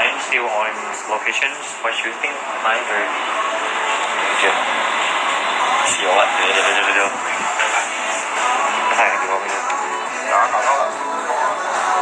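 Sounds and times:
hubbub of many voices: 0.0s - 12.0s.

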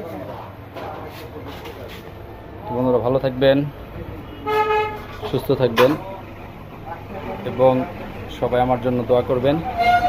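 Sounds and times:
background traffic: 0.0s - 10.0s.

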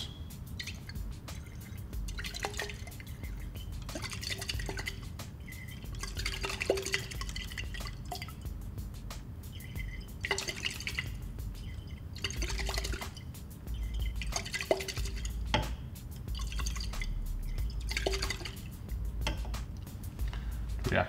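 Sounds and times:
liquid swirling in glass flask: 0.0s - 8.6s, 9.5s - 19.6s.

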